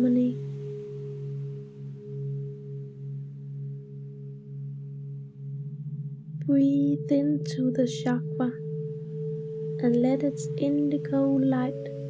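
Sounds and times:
meditation music drone: 0.0 - 12.0.

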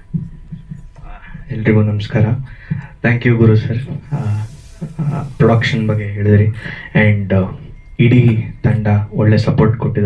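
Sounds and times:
microphone handling thumps: 0.0 - 1.5
man speaking into microphone: 1.0 - 10.0.

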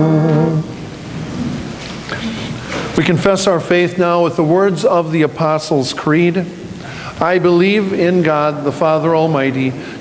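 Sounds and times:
congregation rustling and shuffling: 0.0 - 10.0.

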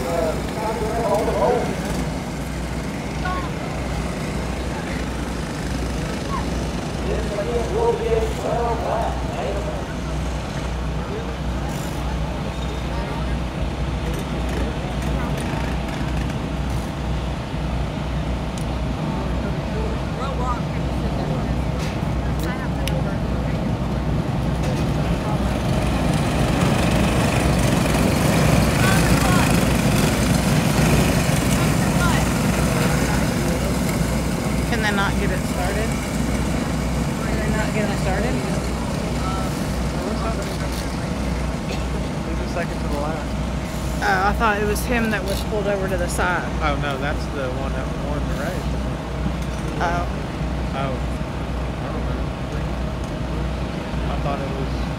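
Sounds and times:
racing go-kart engines: 0.0 - 54.9.

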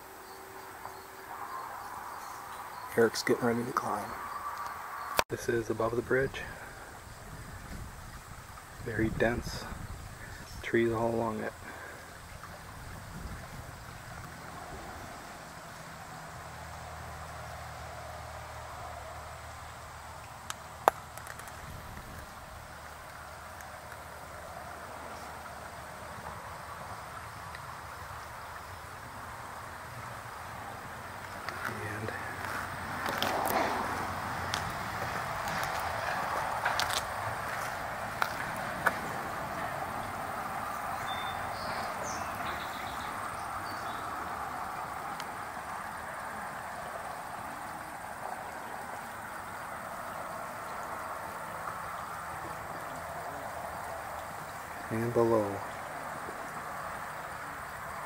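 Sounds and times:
creek water running: 0.0 - 58.0.

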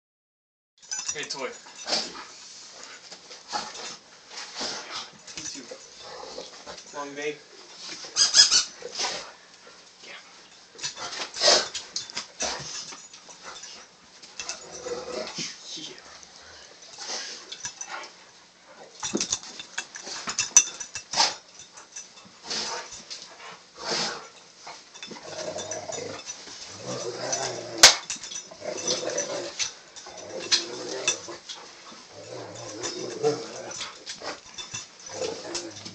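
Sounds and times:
dogs making play noises: 0.9 - 7.0, 7.8 - 35.9.

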